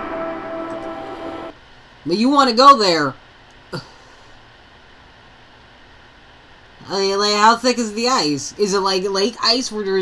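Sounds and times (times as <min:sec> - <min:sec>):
held music chord: 0:00.0 - 0:01.6.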